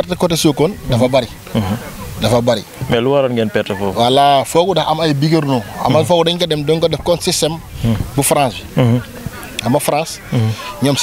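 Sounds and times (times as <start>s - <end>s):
man talking into microphone: 0.0s - 11.0s.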